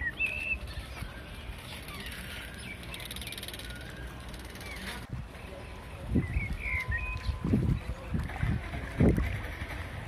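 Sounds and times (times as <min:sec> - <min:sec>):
bird chirps: 0:00.0 - 0:08.1
wind rumble on microphone: 0:05.0 - 0:10.0.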